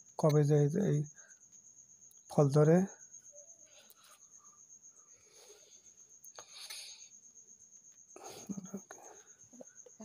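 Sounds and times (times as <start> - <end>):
insect trilling: 0.0 - 10.0.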